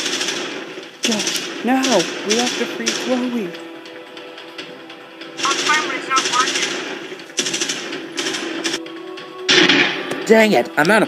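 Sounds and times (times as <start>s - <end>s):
machine-gun sound effects: 0.0s - 3.6s, 5.4s - 8.8s
background music: 0.0s - 11.0s.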